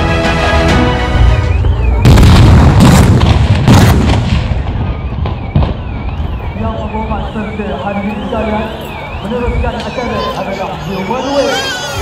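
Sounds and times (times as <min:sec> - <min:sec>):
loud explosion blasts: 0:01.6 - 0:07.3.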